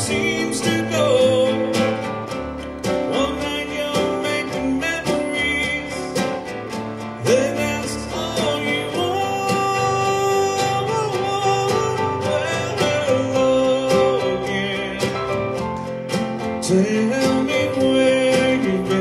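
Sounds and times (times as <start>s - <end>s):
man singing a slow song: 0.0s - 15.5s, 16.5s - 19.0s
strummed nylon-string guitar: 0.0s - 19.0s.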